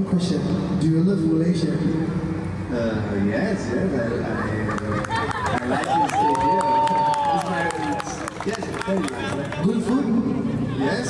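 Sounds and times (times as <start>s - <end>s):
crowd chatter: 2.7s - 11.0s.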